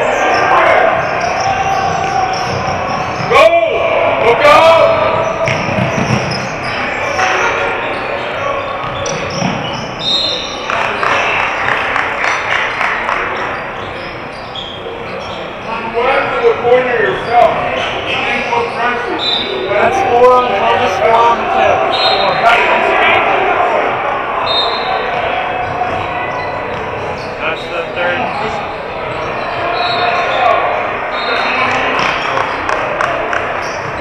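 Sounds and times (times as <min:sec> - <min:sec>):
sneaker squeaks: 0:00.0 - 0:03.5, 0:04.9 - 0:22.9, 0:24.4 - 0:34.0
voices calling out: 0:00.0 - 0:34.0
basketball bouncing: 0:01.0 - 0:03.3, 0:05.2 - 0:06.5, 0:08.8 - 0:10.0, 0:25.1 - 0:27.2.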